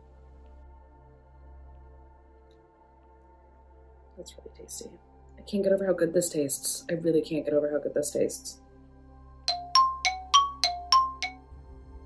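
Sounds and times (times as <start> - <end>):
bell-like chime notes: 9.5 - 11.4.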